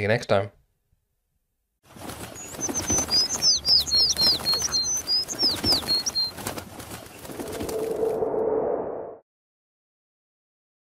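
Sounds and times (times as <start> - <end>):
small birds chirping: 1.9 - 7.6
wings flapping: 1.9 - 8.2.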